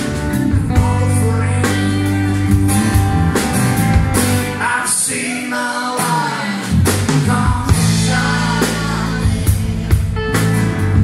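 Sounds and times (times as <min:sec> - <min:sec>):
deep bass notes: 0:00.0 - 0:05.0, 0:06.6 - 0:11.0
live band playing slow song: 0:00.0 - 0:11.0.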